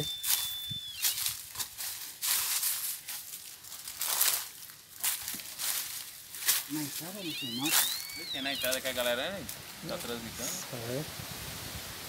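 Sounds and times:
thin steady high tone: 0.0s - 1.6s, 6.9s - 9.4s
dry leaves rustling and crunching: 0.0s - 8.9s.

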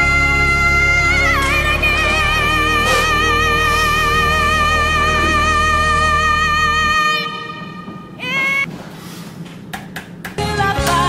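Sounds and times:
woman singing power ballad: 0.0s - 7.6s, 10.4s - 11.0s.

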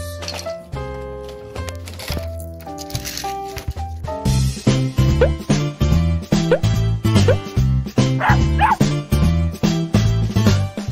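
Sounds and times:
upbeat background music: 3.7s - 10.9s
cartoon dog yips: 6.5s - 7.5s, 8.2s - 8.9s.

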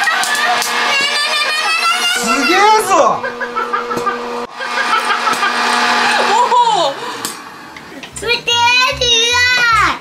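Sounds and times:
popcorn maker fan humming: 0.0s - 10.0s.

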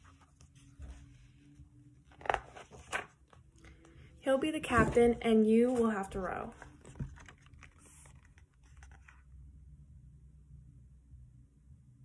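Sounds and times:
paper rustling: 2.1s - 3.8s, 5.6s - 9.3s.

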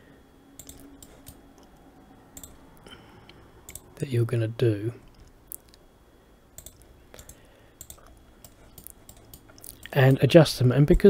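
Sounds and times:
faint computer mouse clicks: 0.6s - 1.4s.

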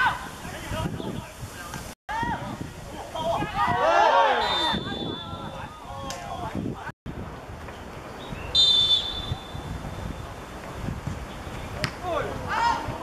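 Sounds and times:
players shouting: 2.1s - 6.6s
referee's whistle blast: 4.4s - 5.5s, 8.5s - 9.7s.

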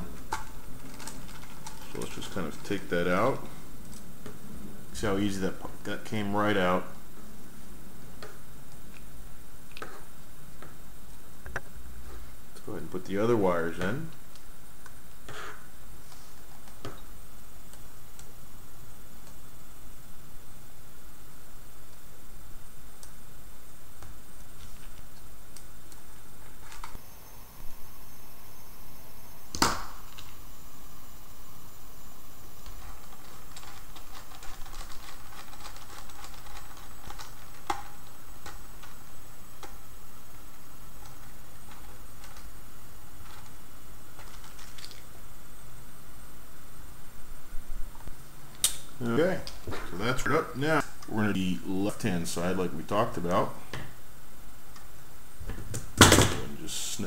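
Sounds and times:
steady hiss: 0.0s - 57.0s.

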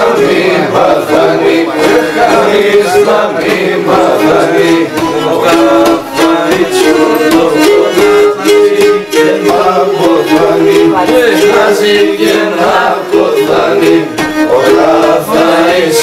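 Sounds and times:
men singing: 0.0s - 16.0s
bowed lyra melody: 3.9s - 16.0s.

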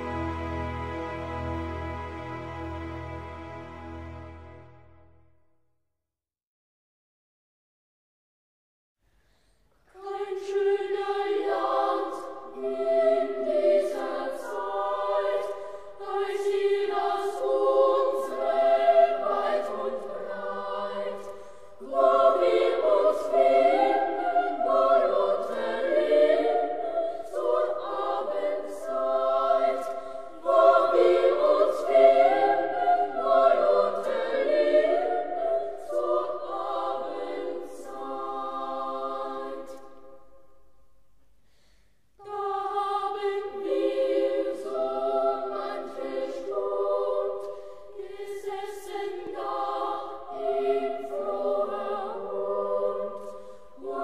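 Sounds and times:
choir singing in harmony: 0.0s - 5.2s, 9.8s - 40.7s, 42.2s - 54.0s.

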